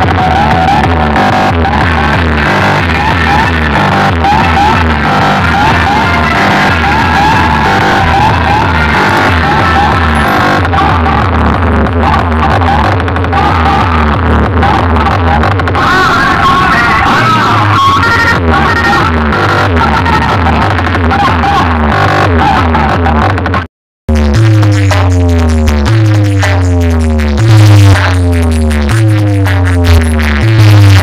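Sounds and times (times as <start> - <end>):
electronic dance music with heavy bass: 0.0 - 31.0.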